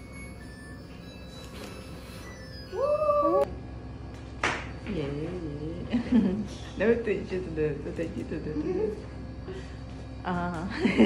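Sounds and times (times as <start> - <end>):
woman's high held cry: 2.7 - 3.5.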